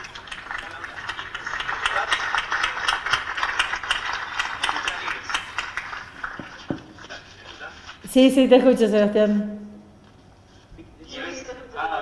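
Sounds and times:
audience applause: 0.0 - 7.2.

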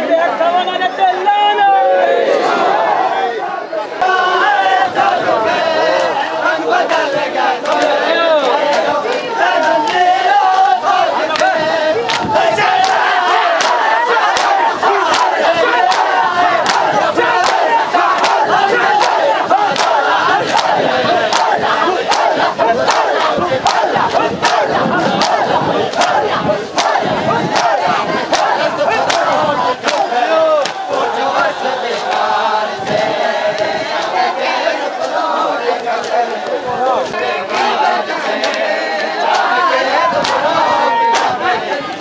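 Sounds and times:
crowd of men shouting: 0.0 - 42.0
hands slapping bare chests: 12.1 - 24.6, 25.2 - 30.9.

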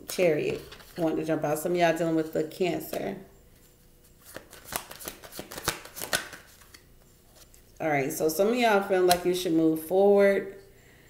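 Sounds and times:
cards shuffled by hand: 4.2 - 6.8.

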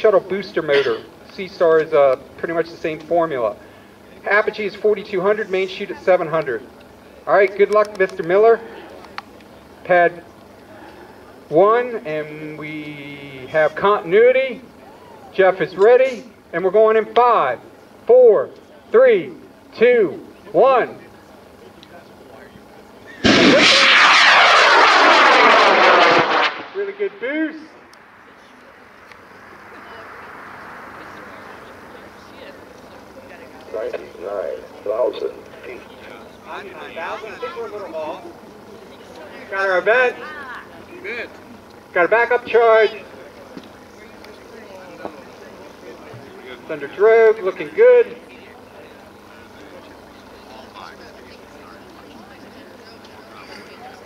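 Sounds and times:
distant chatter of people: 0.0 - 54.0
steady low hum: 0.0 - 54.0
rocket motor roaring: 23.1 - 36.1.

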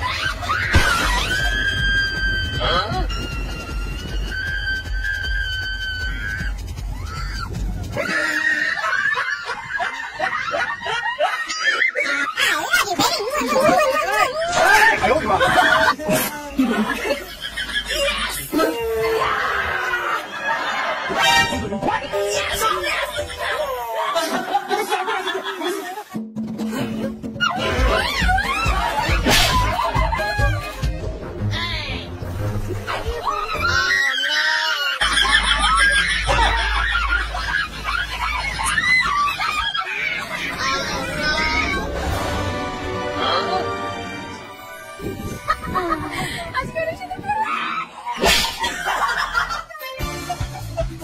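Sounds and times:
shrill screaming: 3.9 - 9.8, 18.5 - 20.7, 33.1 - 42.0
people laughing: 7.9 - 31.2, 33.2 - 51.0.

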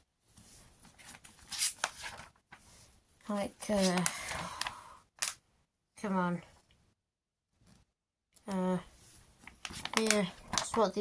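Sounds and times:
paper pages rustling: 0.4 - 2.8, 3.6 - 4.4, 9.4 - 11.0.

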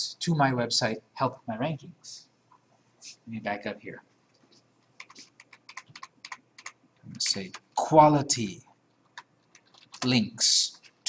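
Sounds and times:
computer keyboard typing: 4.9 - 7.9, 9.0 - 11.0.

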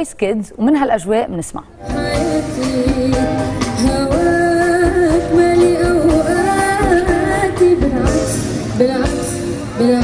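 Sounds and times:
girl singing into microphone: 1.8 - 10.0
live band accompaniment: 1.8 - 10.0.

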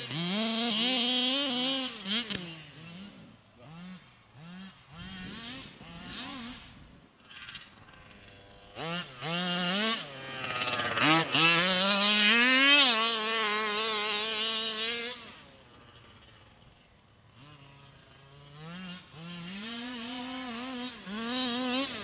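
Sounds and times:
small two-stroke engine revving: 0.0 - 22.0.

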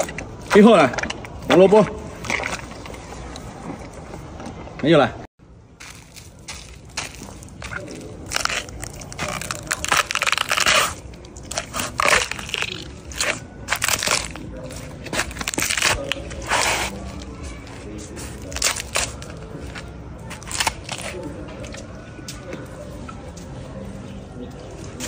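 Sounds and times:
carrots crunching and snapping: 0.0 - 4.1, 5.8 - 22.7.

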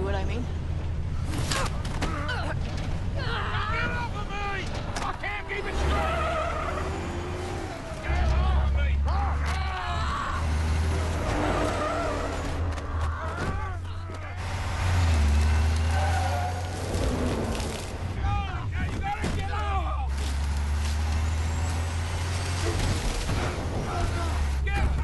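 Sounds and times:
truck engine rumbling: 0.0 - 25.0.

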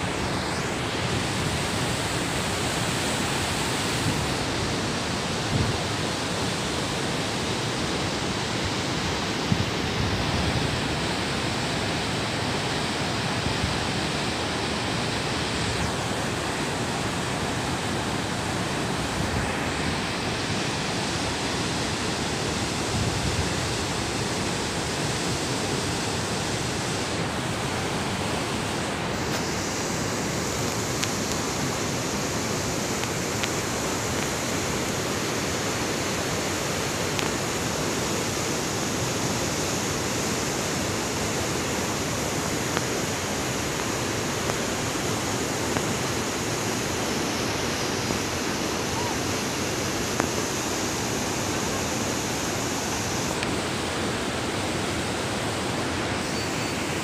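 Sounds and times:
whitewater rushing over boulders: 0.0 - 57.0.

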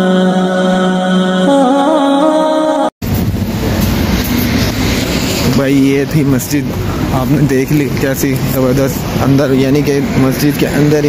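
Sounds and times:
street noise: 3.0 - 11.0.

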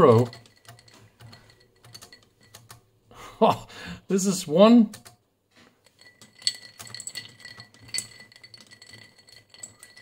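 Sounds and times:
ice cubes clinking in glass: 5.9 - 10.0.

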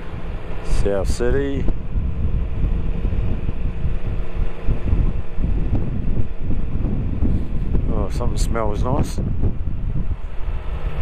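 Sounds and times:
motorcycle engine running: 0.0 - 11.0
wind rumble on microphone: 0.0 - 11.0.

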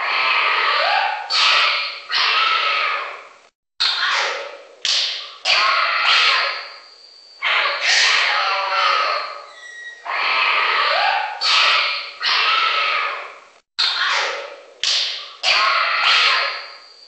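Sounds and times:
screeching animal calls: 0.0 - 14.6, 15.2 - 16.9.

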